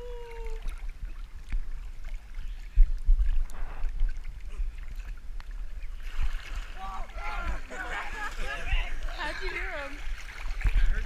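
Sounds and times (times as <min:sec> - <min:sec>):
small splashes: 0:00.0 - 0:11.0
water sloshing against camera: 0:00.0 - 0:11.0.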